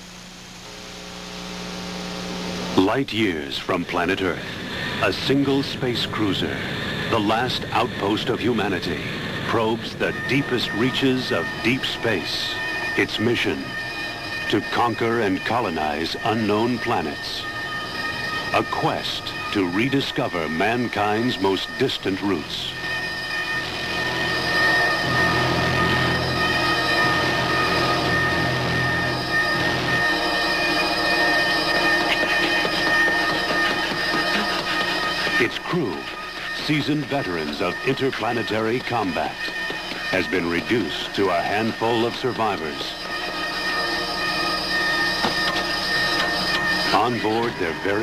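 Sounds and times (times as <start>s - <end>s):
electronic drone: 0.0s - 48.0s
low hum: 0.0s - 48.0s
high synthesizer tones: 4.7s - 48.0s
low rumble: 21.7s - 37.1s.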